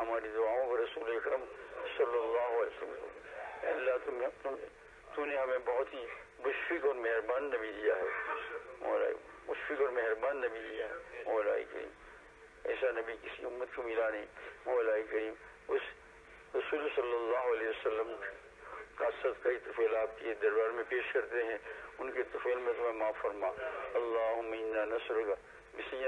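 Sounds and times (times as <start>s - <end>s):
man talking over telephone line: 0.0s - 26.0s.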